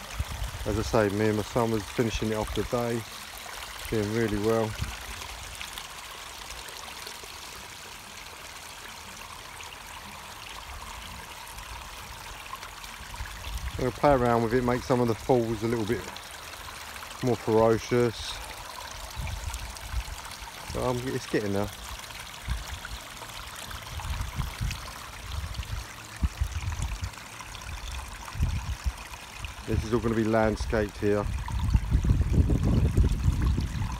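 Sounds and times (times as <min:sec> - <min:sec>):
stream trickling and splashing: 0:00.0 - 0:33.9.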